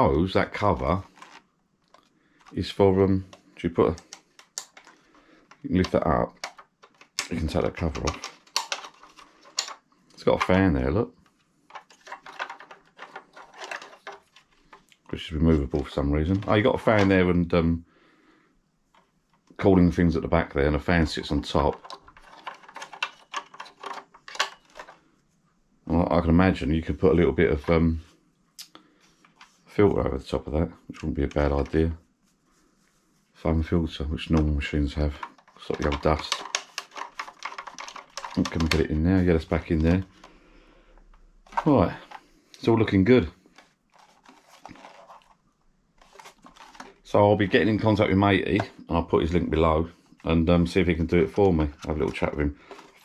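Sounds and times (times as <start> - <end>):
plastic casing rubbing in hands: 35.0 - 40.4, 43.5 - 48.0.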